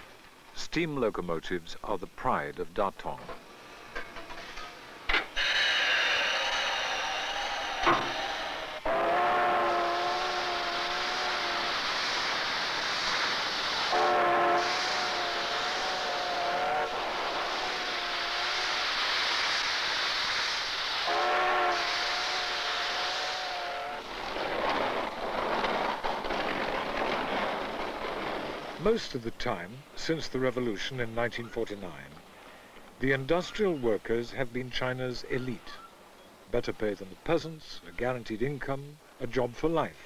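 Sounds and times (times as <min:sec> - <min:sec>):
hiss of escaping steam: 0:03.5 - 0:25.3
steam locomotive whistle blowing: 0:05.4 - 0:12.4, 0:13.8 - 0:19.6, 0:21.0 - 0:24.1.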